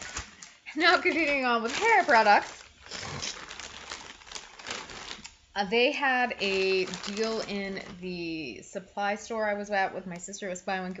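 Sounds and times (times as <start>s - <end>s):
plastic packaging crinkling: 0.0s - 8.4s.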